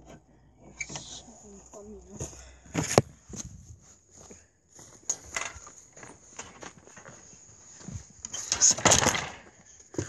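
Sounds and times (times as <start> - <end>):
footsteps: 2.0 - 8.1.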